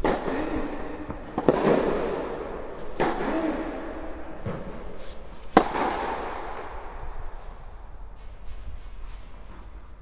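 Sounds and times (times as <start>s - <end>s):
faint racket hitting ball: 0.0s - 3.4s, 4.4s - 6.8s
tennis serve echo: 0.0s - 9.7s.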